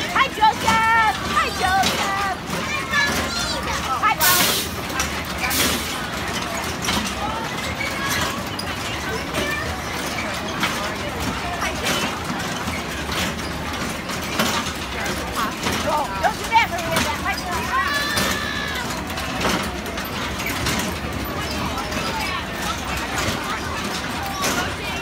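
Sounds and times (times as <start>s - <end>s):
carousel ride rumble: 0.0s - 25.0s
people chattering: 0.0s - 25.0s.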